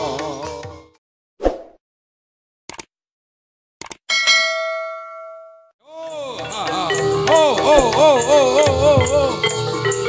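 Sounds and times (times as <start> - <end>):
quick clicks: 2.7 - 2.9, 3.8 - 4.0
bright bell-like chime: 4.1 - 5.8.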